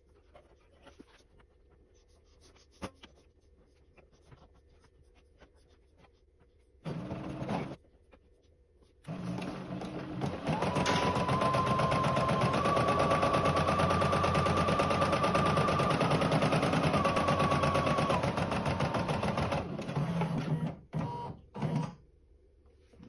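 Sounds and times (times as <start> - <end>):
embroidery machine stitching: 6.8 - 7.8, 9.1 - 22.0.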